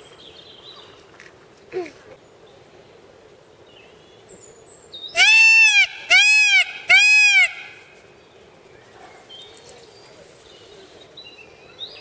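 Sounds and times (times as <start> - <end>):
peacock calls: 5.1 - 8.0.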